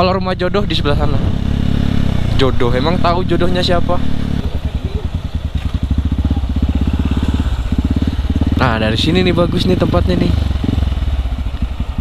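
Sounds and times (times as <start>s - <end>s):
motorcycle engine at low revs: 0.0s - 12.0s.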